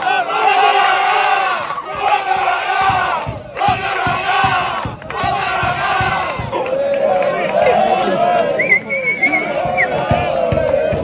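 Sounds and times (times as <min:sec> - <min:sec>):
men shouting and chanting: 0:00.0 - 0:08.6, 0:09.2 - 0:11.0
rhythmic low thumps: 0:01.9 - 0:06.8, 0:09.4 - 0:11.0.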